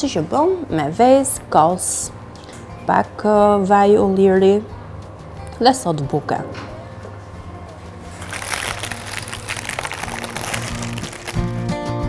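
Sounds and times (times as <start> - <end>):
background music: 0.0 - 12.0
baking paper crinkling: 8.1 - 11.7.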